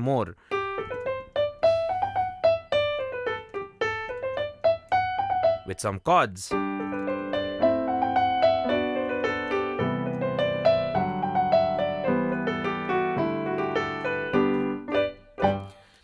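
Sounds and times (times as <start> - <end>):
digital piano scales and chords: 0.0 - 5.9, 6.5 - 16.0.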